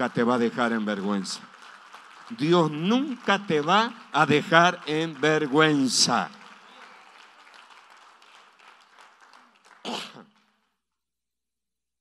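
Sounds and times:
congregation applauding: 0.0 - 10.8.

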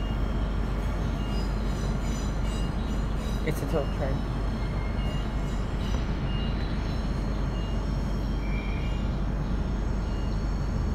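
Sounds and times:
train rumble: 0.0 - 10.9.

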